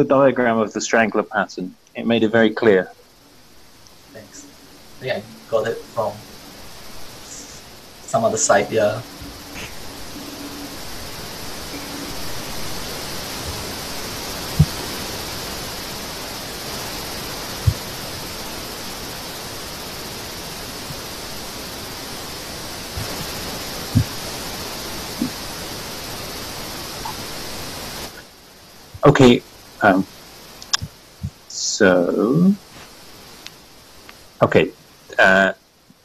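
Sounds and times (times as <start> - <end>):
microphone background hiss: 0.0 - 36.0.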